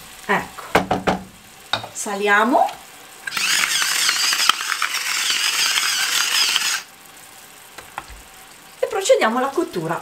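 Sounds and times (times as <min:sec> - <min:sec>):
salt mill grinding: 0:03.3 - 0:06.9.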